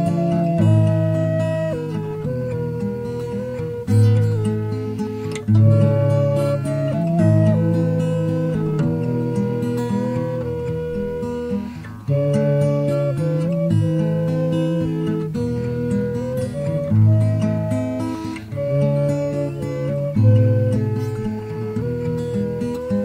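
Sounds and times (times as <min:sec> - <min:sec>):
flute playing slow melody: 0:00.0 - 0:23.0
strummed acoustic guitar: 0:00.0 - 0:23.0.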